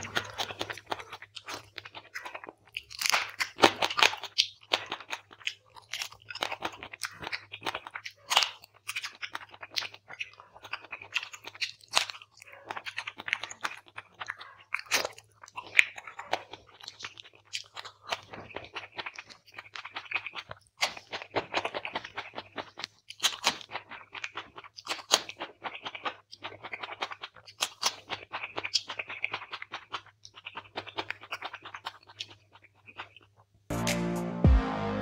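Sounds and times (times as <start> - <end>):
chewing and crunching bones: 0.0 - 33.6.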